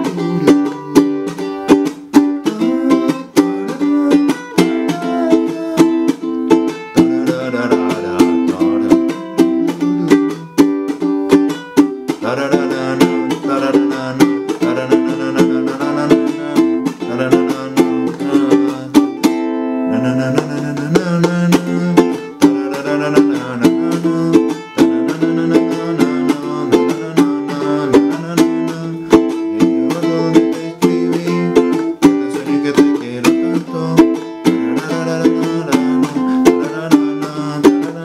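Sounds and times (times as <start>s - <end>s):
muted ukulele chucks: 0.0s - 19.4s, 20.2s - 38.0s
ukulele strumming: 0.0s - 38.0s.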